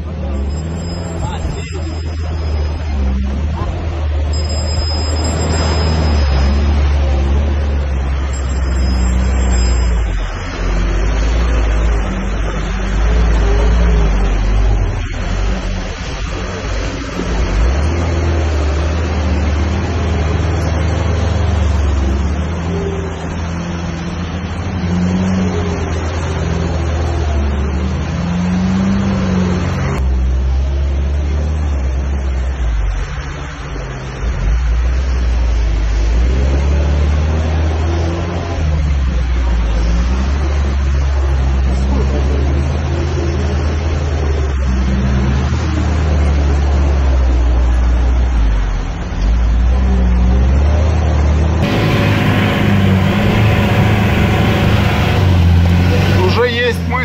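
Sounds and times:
engine running at low revs: 0:00.0 - 0:57.0
tyres through mud and water: 0:00.0 - 0:57.0.

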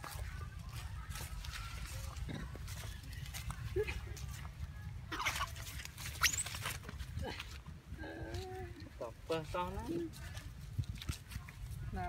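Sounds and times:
baby monkey squealing: 0:05.1 - 0:06.7.

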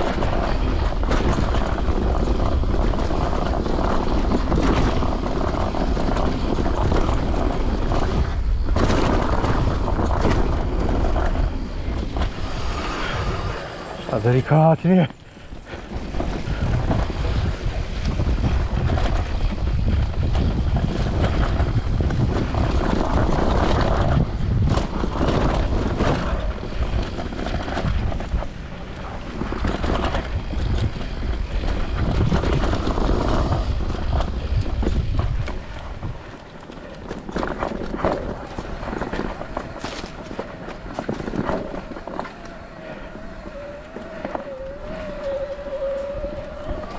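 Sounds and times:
tyres rumbling over dirt: 0:00.0 - 0:46.9
wind on microphone: 0:00.0 - 0:46.9
bike knocks and rattles: 0:29.3 - 0:44.4.

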